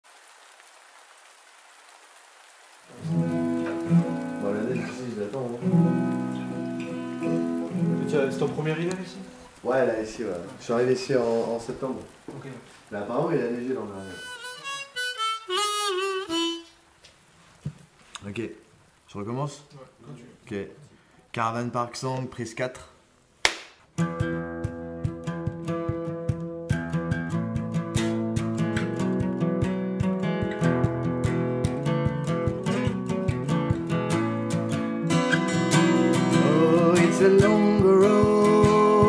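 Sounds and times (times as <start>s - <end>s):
light rain falling: 0.0s - 23.6s, 25.0s - 39.0s
harmonica phrase with bent note: 14.0s - 16.8s.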